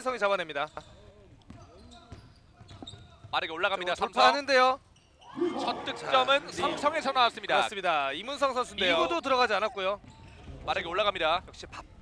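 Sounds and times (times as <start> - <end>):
basketball bouncing on court: 0.7 - 3.8, 10.0 - 10.9.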